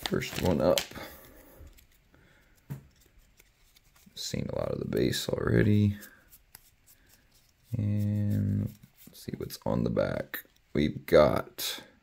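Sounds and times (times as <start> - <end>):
trading cards rustling: 0.0 - 10.8.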